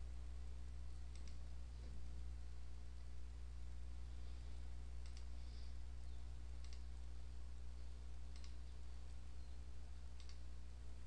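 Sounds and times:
steady low hum: 0.0 - 11.0
computer mouse buttons clicking: 1.1 - 1.4, 5.0 - 5.3, 6.6 - 6.9, 8.3 - 8.7, 10.1 - 10.5.

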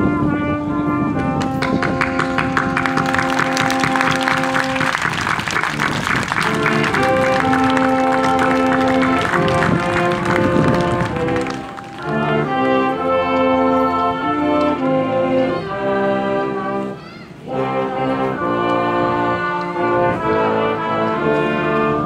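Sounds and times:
sustained brass notes: 0.0 - 22.0.

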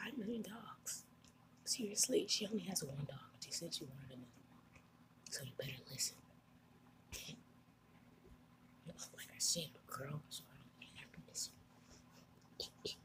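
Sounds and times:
person whispering: 5.3 - 6.2, 7.1 - 7.4, 8.9 - 11.6, 12.6 - 13.0.

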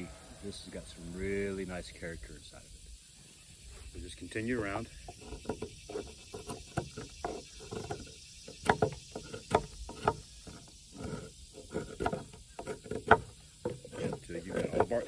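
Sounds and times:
knife scraping bark off wood: 4.8 - 15.0.

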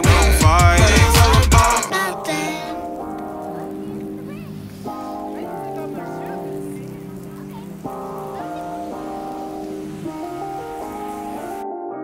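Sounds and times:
rain hissing: 0.0 - 11.6
slow held chords: 0.0 - 12.0.

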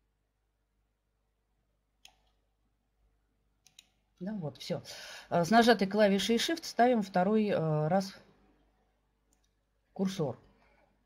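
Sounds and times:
computer mouse and keyboard clicks: 3.6 - 4.0.

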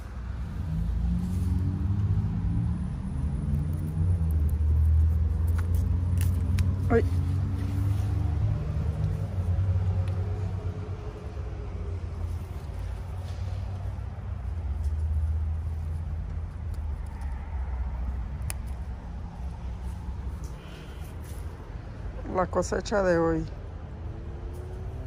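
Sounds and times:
steady low rumble: 0.0 - 24.1.

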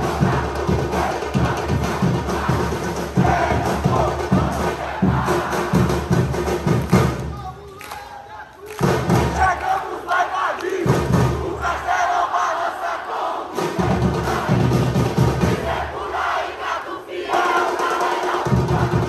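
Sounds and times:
deep drums beating: 0.0 - 7.6, 8.8 - 9.6, 10.7 - 11.9, 13.6 - 16.4, 17.3 - 19.0
crowd chanting: 0.0 - 19.0.

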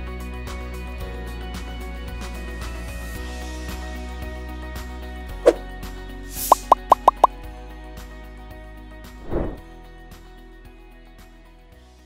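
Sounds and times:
plops falling in pitch: 6.5 - 7.3.

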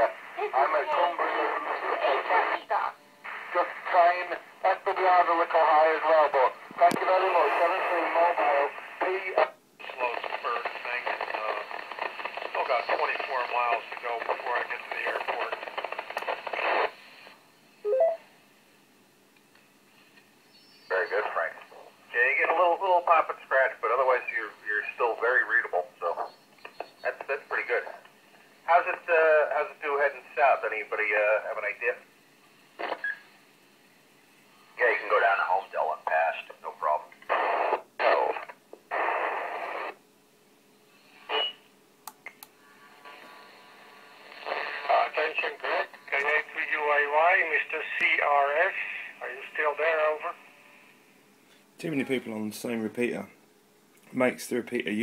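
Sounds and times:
radio hiss bursts: 0.0 - 17.4, 20.9 - 33.6, 34.7 - 40.0, 40.9 - 41.7, 42.8 - 51.0
radio voices: 0.0 - 18.2, 20.9 - 32.0, 32.8 - 33.2, 34.8 - 40.0, 41.2 - 41.6, 44.2 - 50.5
radio beep rising in steps: 17.9 - 18.2.

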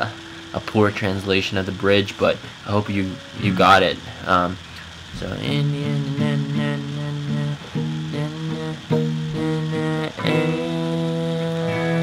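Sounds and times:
acoustic guitar strumming chords: 0.0 - 12.0.

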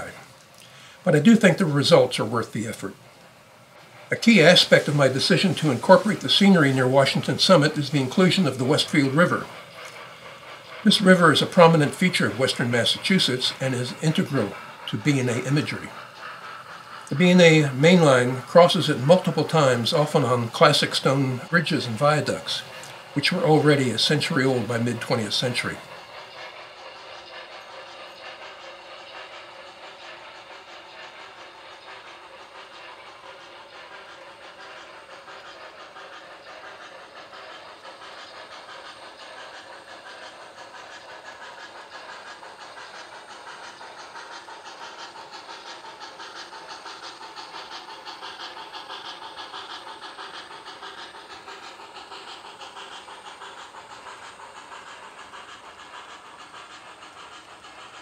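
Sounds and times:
model train running: 0.0 - 58.0.

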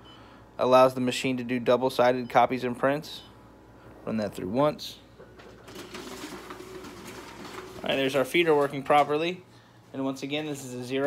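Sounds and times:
copier document feeder whirring: 5.2 - 9.4.

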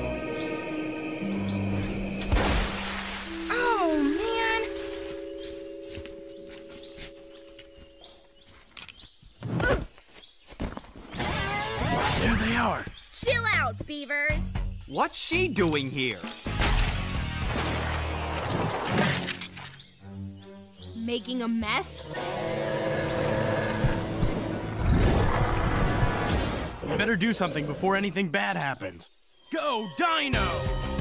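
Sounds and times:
held music chord: 0.0 - 8.5.

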